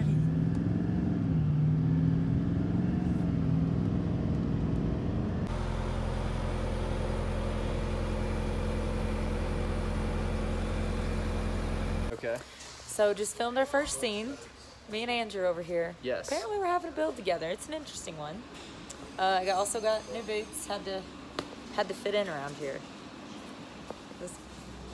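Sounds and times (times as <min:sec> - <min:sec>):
truck engine while driving: 0:00.0 - 0:12.1
engine idling: 0:04.8 - 0:12.1.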